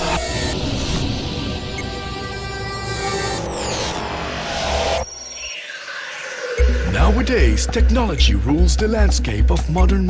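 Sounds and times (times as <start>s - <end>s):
rising noise sweep: 0.0s - 7.6s
whistling tones gliding downward: 0.0s - 7.6s
hardstyle electronic dance music: 5.6s - 9.9s.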